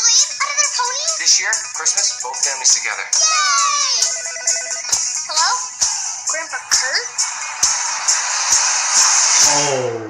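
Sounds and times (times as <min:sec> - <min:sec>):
music: 0:00.0 - 0:10.0
telephone ringing electronic trill: 0:04.1 - 0:05.3.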